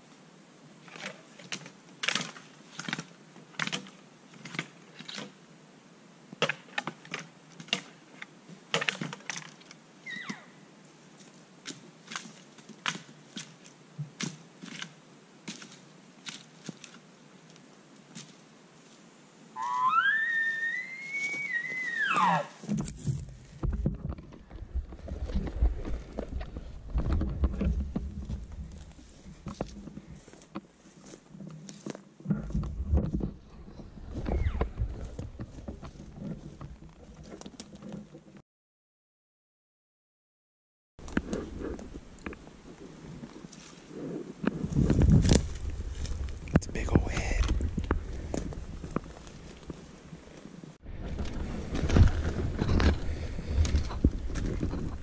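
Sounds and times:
elk bugle whistle: 19.6 - 22.6.

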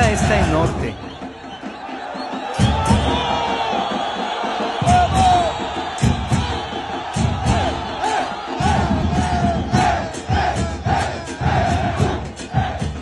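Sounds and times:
crowd chanting and singing: 0.0 - 13.0
low drum beats: 0.0 - 13.0.

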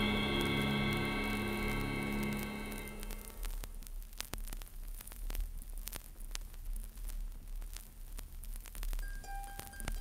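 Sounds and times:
low rumble: 0.0 - 3.9
vinyl surface hiss: 0.0 - 10.0
vinyl clicks and pops: 1.6 - 10.0.

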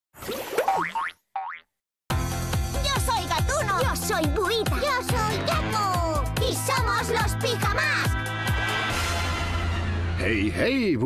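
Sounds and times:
cartoon boing sound effects: 0.6 - 1.7.

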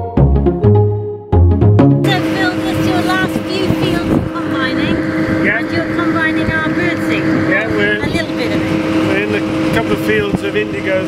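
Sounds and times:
steady low hum: 2.0 - 11.0
wind buffeting microphone: 2.1 - 11.0.

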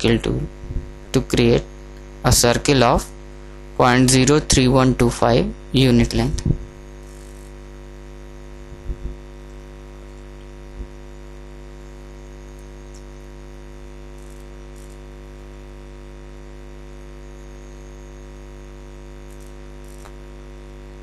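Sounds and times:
electrical mains hum: 0.0 - 21.0
soft low thumps: 0.6 - 1.0, 6.3 - 6.8, 8.7 - 9.2.

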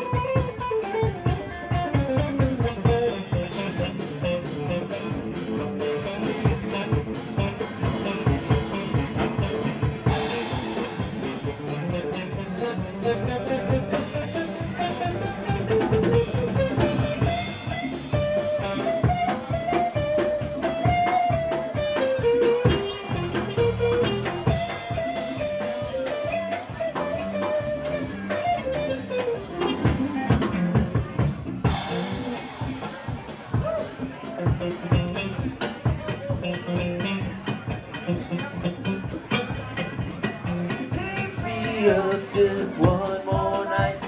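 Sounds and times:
blues rock band playing: 0.0 - 44.0
lead guitar bending notes: 0.0 - 44.0.

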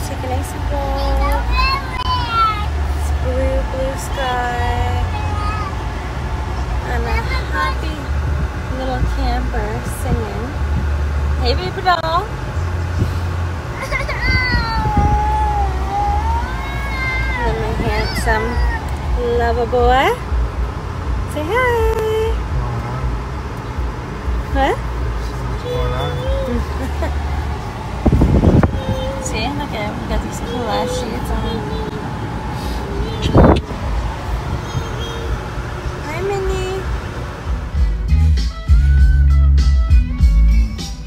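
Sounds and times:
car rumble from inside cabin: 0.0 - 40.6.

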